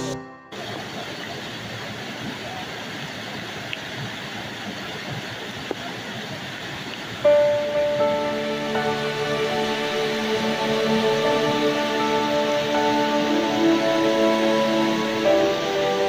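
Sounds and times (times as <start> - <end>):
background music: 0.0 - 0.6, 7.2 - 16.0
waterfall rushing over rock: 0.5 - 16.0.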